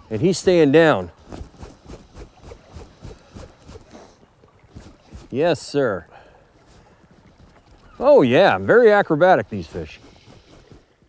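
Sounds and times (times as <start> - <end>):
water lapping and splashing: 0.0 - 11.0.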